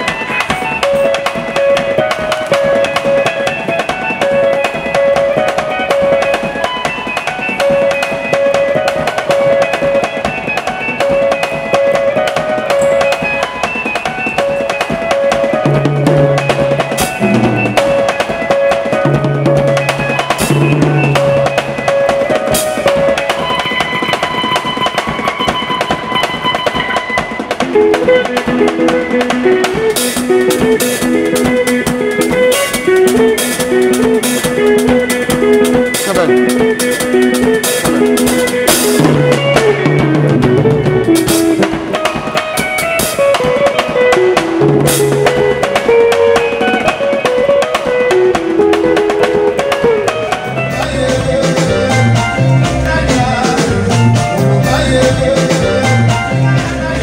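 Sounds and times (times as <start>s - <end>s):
electric guitar: 0.0s - 57.0s
rapid drum kit playing: 0.0s - 57.0s.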